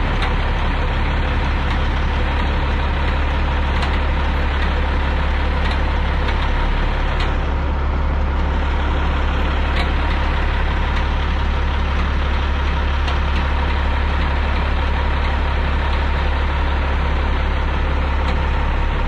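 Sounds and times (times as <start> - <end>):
diesel engine running under load: 0.0 - 19.0.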